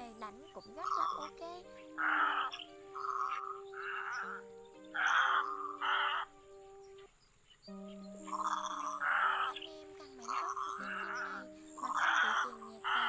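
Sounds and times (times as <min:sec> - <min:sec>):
background music with low notes: 0:00.0 - 0:13.0
harsh croaking egret calls: 0:00.8 - 0:01.4, 0:02.0 - 0:04.4, 0:05.0 - 0:06.3, 0:08.3 - 0:13.0.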